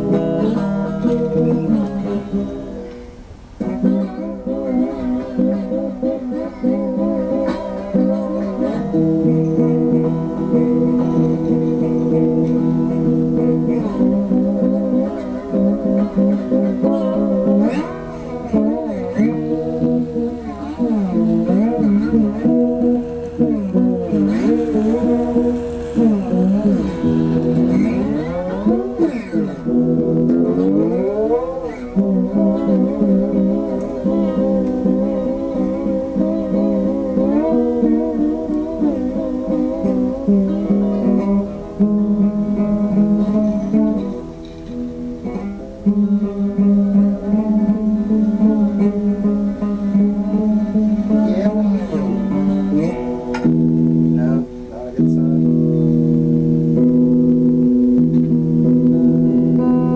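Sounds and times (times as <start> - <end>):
guitar with sliding held notes: 0.0 - 59.9.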